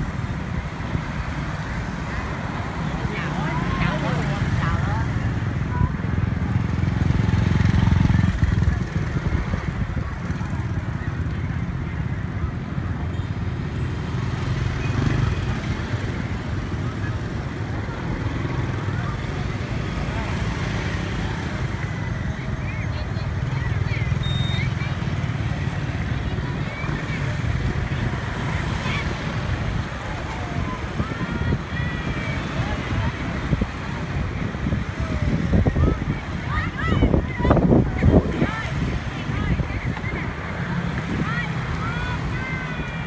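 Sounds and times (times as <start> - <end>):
motorbike traffic rumble: 0.0 - 43.0
indistinct voices: 14.4 - 43.0.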